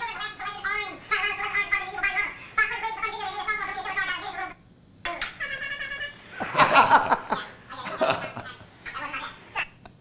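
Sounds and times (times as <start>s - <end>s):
sped-up high-pitched voice chattering: 0.0s - 6.4s, 7.3s - 9.8s
loud laughter: 5.4s - 8.6s.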